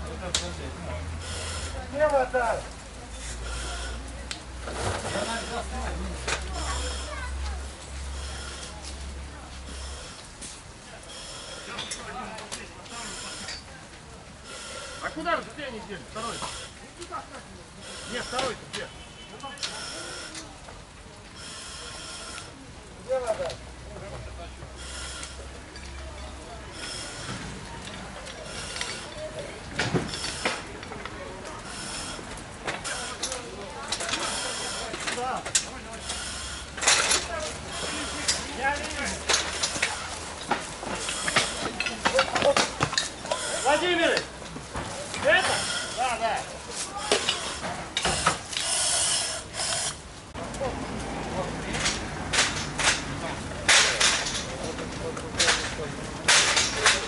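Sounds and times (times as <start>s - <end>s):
faint voices: 0.0s - 57.0s
fire hose spraying water: 0.0s - 57.0s
steady hiss: 31.6s - 50.4s.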